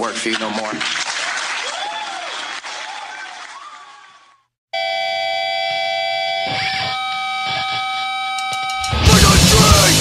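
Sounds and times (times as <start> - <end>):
electric guitar punk music: 6.4 - 10.0.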